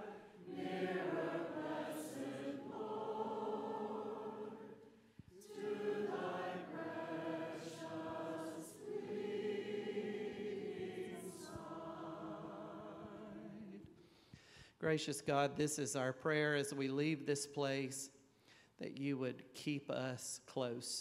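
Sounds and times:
congregation and choir singing hymn: 0.0s - 14.0s.

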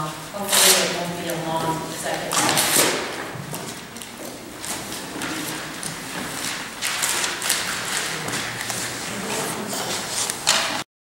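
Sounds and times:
rustling and shuffling papers: 0.4s - 10.8s.

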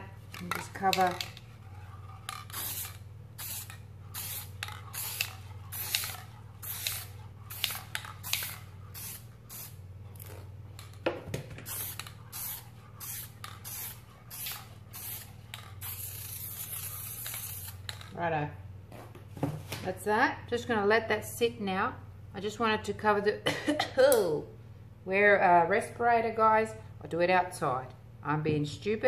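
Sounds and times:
aerosol can spraying: 0.3s - 1.5s, 2.2s - 18.1s.

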